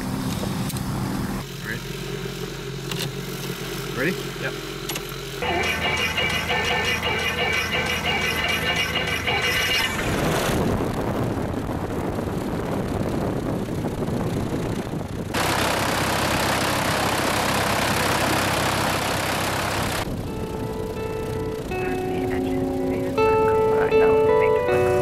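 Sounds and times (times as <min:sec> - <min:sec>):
propeller aircraft engine running: 0:00.0 - 0:25.0.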